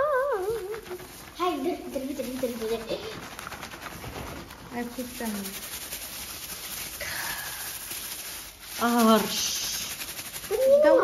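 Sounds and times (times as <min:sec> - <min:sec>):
person speaking: 0:00.0 - 0:03.3, 0:04.7 - 0:05.7, 0:08.7 - 0:11.0
room noise hiss: 0:00.0 - 0:11.0.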